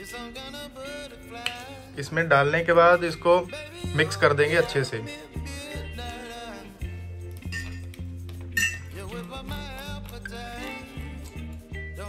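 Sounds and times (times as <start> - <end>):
background music with bass line: 0.0 - 12.0
spoon clinking against glass jar: 7.3 - 9.3.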